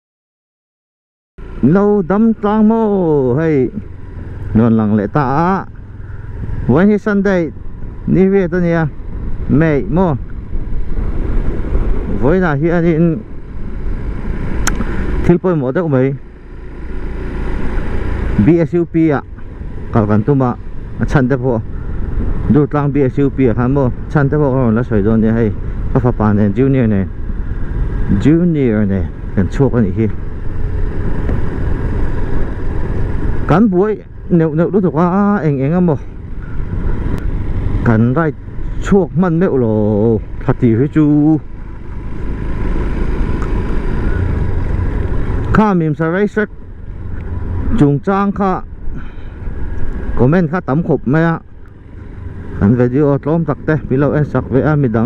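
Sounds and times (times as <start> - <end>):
motorcycle engine rumble: 1.4 - 55.0
road and wind noise: 1.4 - 55.0
man speaking: 1.6 - 3.8, 4.5 - 5.7, 6.7 - 10.2, 12.2 - 13.3, 15.2 - 16.2, 18.4 - 19.3, 19.9 - 21.7, 22.5 - 27.2, 28.1 - 30.2, 33.5 - 36.1, 37.8 - 41.4, 45.5 - 46.5, 47.7 - 49.1, 50.2 - 51.5, 52.6 - 55.0.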